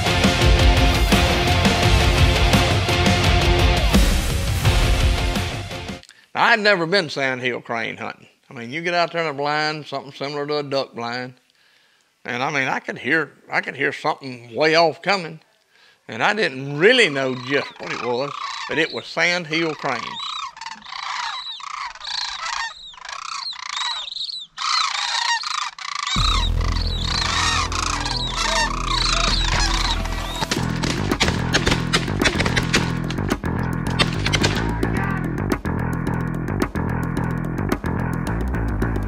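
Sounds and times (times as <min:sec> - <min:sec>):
cranes calling: 0:16.7 - 0:34.9
music with heavy bass beat: 0:26.2 - 0:39.0.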